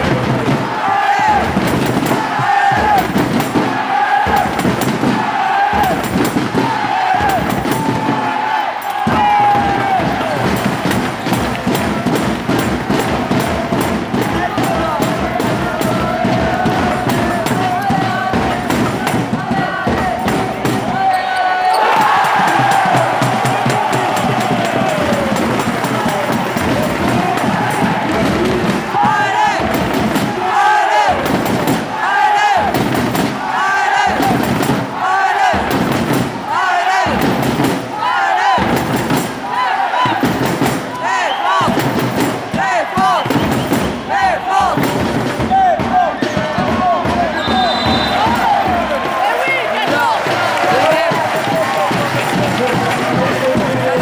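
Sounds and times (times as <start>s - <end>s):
crowd noise: 0.0s - 54.0s.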